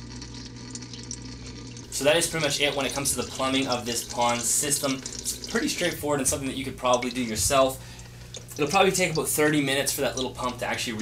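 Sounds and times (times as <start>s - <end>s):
pond pump humming: 0.0s - 11.0s
water trickling and splashing: 0.0s - 11.0s.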